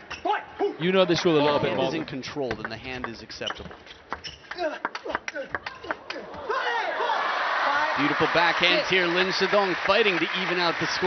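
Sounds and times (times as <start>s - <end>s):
audience applause: 4.5s - 11.0s.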